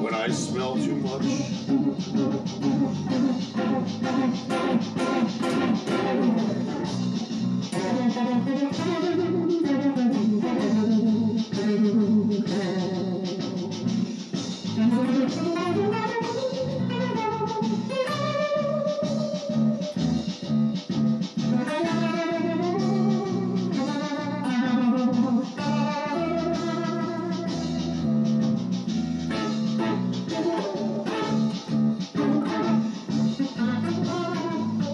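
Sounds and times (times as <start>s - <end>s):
electric guitar lead melody: 0.0s - 34.9s
low bass line: 0.0s - 34.9s.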